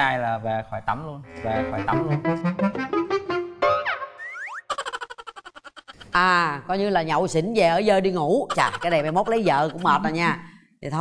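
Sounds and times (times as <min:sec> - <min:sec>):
person speaking: 0:00.9 - 0:02.5, 0:06.0 - 0:11.0.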